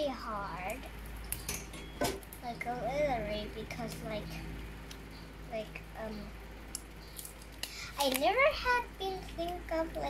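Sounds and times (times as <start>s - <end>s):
paper stickers peeled and rustling: 7.1s - 10.0s.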